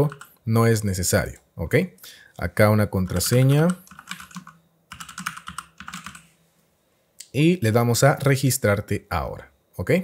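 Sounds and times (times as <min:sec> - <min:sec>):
computer keyboard typing: 0:00.0 - 0:00.4, 0:03.1 - 0:06.3.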